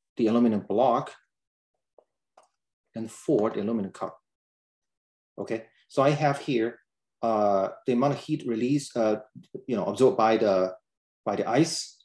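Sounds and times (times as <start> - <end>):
man speaking: 3.0 - 4.3, 5.4 - 12.0.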